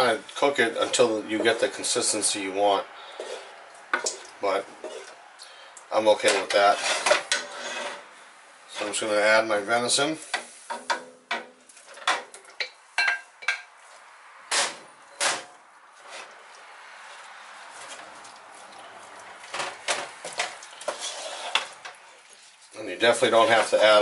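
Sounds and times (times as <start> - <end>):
spoon stirring meat in sauce: 0.2 - 5.2, 17.8 - 22.8.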